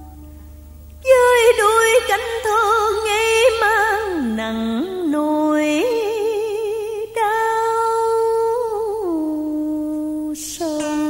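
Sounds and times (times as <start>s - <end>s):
woman singing long notes: 1.0s - 11.0s.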